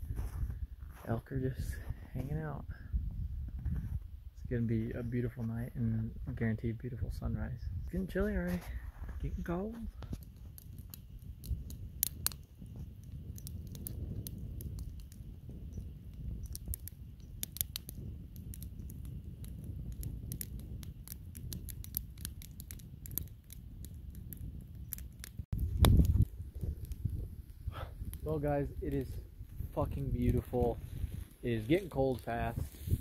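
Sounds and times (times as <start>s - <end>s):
low rumble of fire: 0.0s - 33.0s
campfire crackling and popping: 7.8s - 33.0s.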